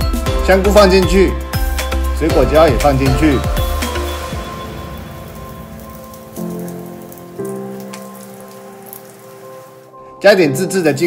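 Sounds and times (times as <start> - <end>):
soft background music: 0.0 - 11.0
oil sizzling in a frying pan: 3.6 - 9.9
small oil pops: 6.1 - 9.3.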